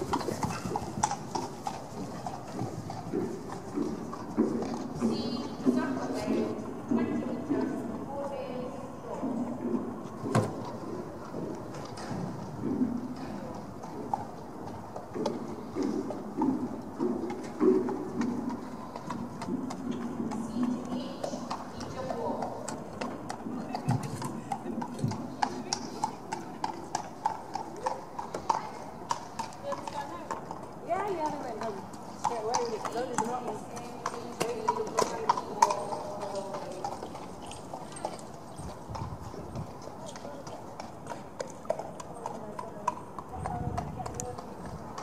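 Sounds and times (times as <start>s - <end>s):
horse hoofbeats on sand: 0.0s - 45.0s.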